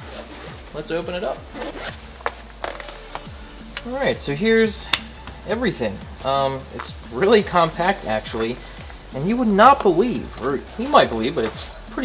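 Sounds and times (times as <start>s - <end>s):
case unzipping and handling: 0.0s - 4.1s, 4.8s - 11.8s
music with deep beat: 0.0s - 12.0s.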